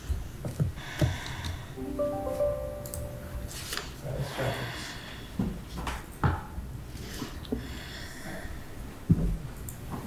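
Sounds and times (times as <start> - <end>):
low room noise: 1.3 - 10.0.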